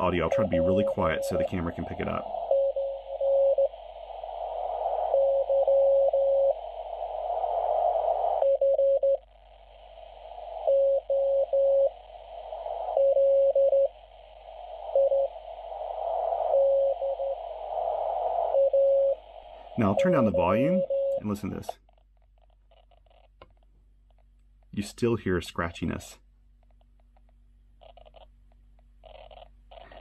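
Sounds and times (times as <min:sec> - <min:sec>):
receiver hiss: 0:00.0 - 0:30.0.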